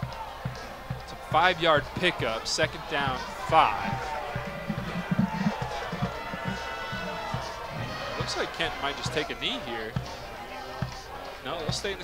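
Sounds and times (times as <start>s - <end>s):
distant crowd voices: 0.0s - 12.0s
faint music: 0.0s - 12.0s
low thumps: 3.4s - 8.0s.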